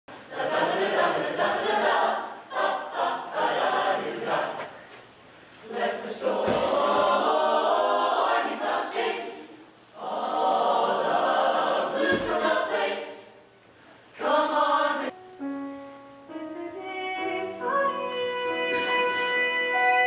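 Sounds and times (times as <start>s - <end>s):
choir singing unaccompanied: 0.1s - 4.9s, 5.6s - 13.5s, 14.2s - 15.2s.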